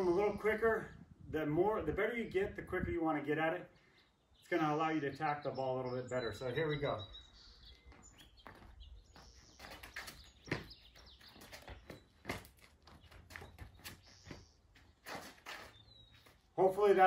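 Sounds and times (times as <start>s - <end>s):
sneaker footsteps scuffing on pavement: 7.7s - 16.6s.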